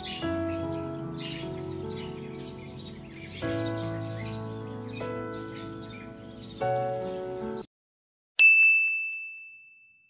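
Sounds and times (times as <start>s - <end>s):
notification bell ding: 8.4s - 10.0s.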